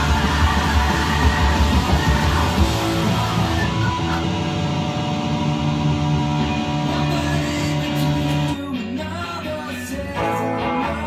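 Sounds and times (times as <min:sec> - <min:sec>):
electric guitar ringing notes: 0:00.0 - 0:08.8.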